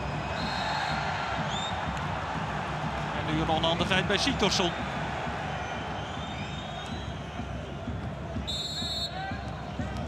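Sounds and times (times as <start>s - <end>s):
stadium crowd noise: 0.0s - 10.0s
referee's whistle blast: 8.5s - 9.2s.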